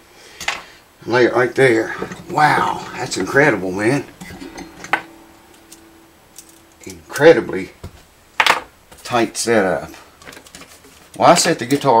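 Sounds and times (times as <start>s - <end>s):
guitar string ringing: 1.6s - 8.9s.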